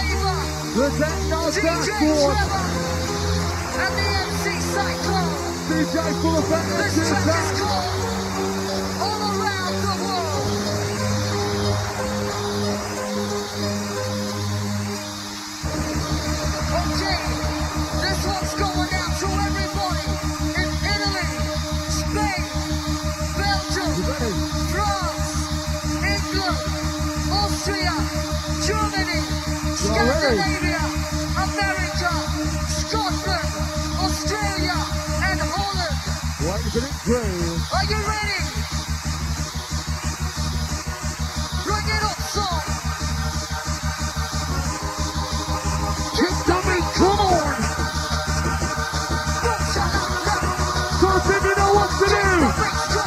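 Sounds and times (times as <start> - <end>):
fast pounding dance beat: 0.0 - 8.2, 15.7 - 53.0
bassline: 0.0 - 53.0
held synth notes: 0.0 - 53.0.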